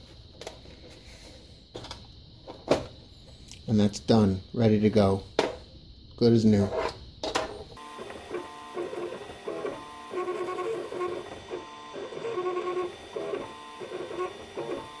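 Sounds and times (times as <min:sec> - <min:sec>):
printer motors whining: 0:07.8 - 0:15.0.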